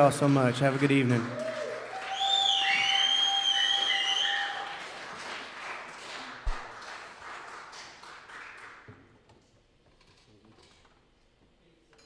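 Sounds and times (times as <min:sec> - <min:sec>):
audience applause: 0:00.0 - 0:08.9
loud gliding whistles: 0:01.9 - 0:04.8.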